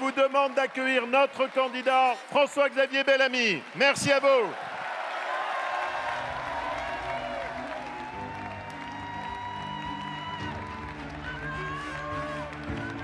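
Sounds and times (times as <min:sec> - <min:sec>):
crowd applauding and cheering: 0:00.0 - 0:13.0.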